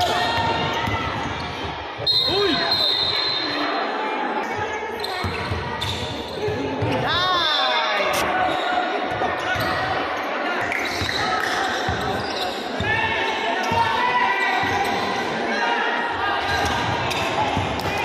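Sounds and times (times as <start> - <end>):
sneakers squealing on court: 4.4 - 6.9, 8.3 - 15.3.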